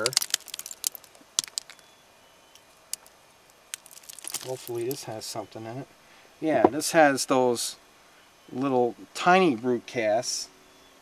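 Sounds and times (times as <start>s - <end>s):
stone clicking on stone: 0.0s - 1.8s, 2.9s - 3.1s, 3.7s - 5.0s.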